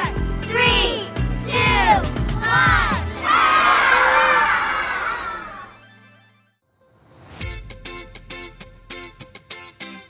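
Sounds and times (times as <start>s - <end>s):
upbeat music: 0.0s - 4.3s
children cheering and shouting: 0.0s - 5.9s.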